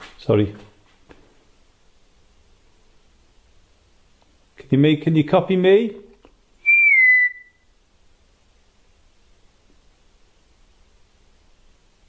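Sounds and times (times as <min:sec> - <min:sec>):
person whistling a short note: 0:06.6 - 0:07.6.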